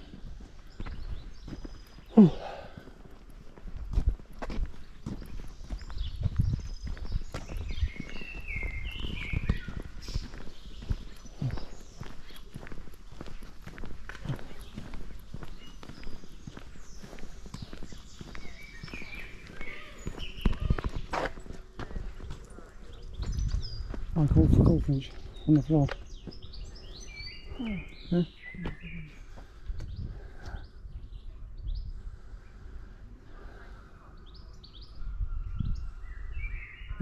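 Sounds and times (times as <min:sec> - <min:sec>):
footsteps on paved path: 0:00.0 - 0:35.0
small birds chirping: 0:00.0 - 0:37.0.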